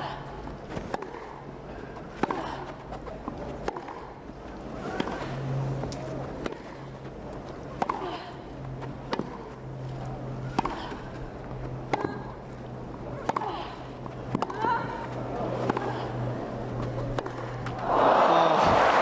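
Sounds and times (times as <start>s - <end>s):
low crowd hum: 0.0s - 19.0s
racket hitting tennis ball: 0.8s - 1.4s, 2.1s - 2.7s, 3.6s - 4.2s, 4.8s - 5.3s, 6.4s - 6.8s, 7.7s - 8.0s, 9.0s - 9.5s, 10.5s - 11.0s, 11.9s - 12.4s, 13.1s - 13.6s, 14.3s - 14.8s, 15.5s - 16.0s, 17.0s - 17.8s.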